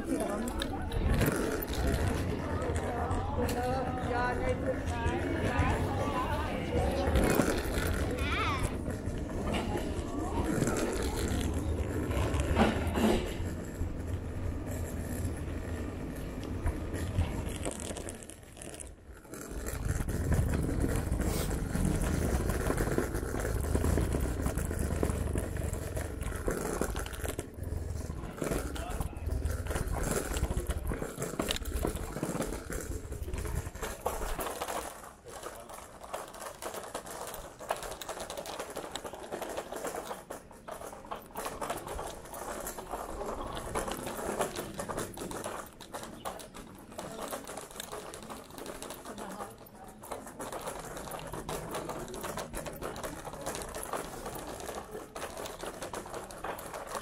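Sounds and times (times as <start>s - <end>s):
scooter wheels rolling over stone: 0.0s - 57.0s.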